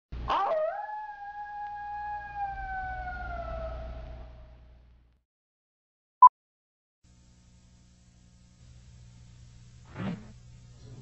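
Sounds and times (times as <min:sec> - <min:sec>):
long howl-like cry: 0:00.3 - 0:04.7.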